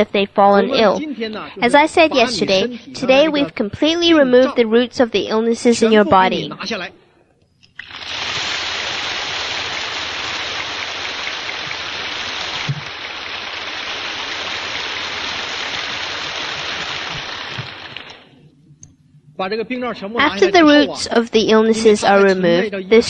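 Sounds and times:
audience applauding: 7.8s - 18.3s.

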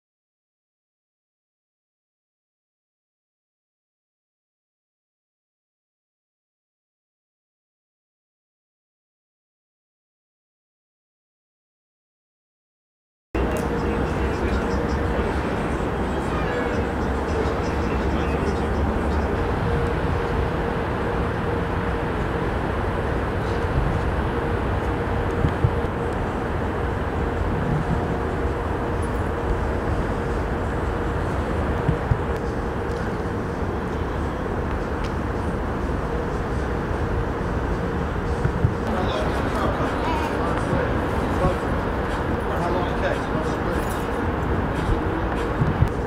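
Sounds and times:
city street rumble: 13.4s - 46.0s.

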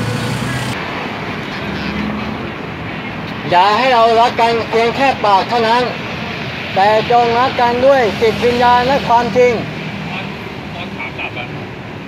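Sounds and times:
vehicle engine drone: 0.0s - 3.5s, 6.0s - 12.0s
city road traffic: 0.0s - 12.0s.

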